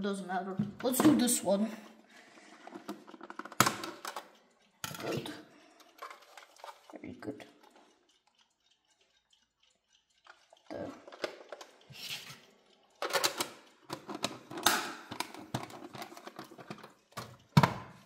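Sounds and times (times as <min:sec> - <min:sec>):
plastic clicks and clattering: 0:02.6 - 0:06.9, 0:10.3 - 0:11.9, 0:13.0 - 0:18.0.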